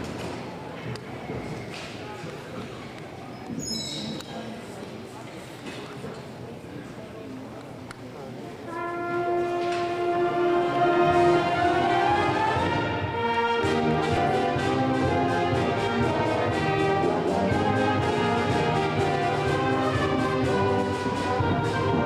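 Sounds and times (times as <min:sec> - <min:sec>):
concert band playing: 0:08.7 - 0:22.0.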